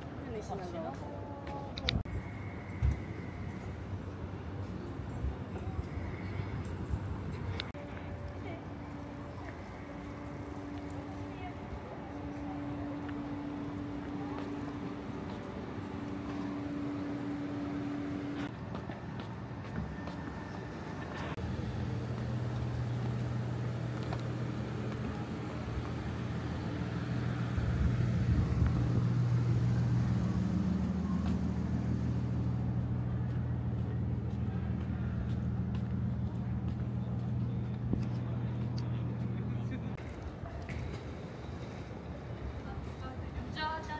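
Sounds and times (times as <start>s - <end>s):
vehicle engine humming: 0.0s - 43.9s.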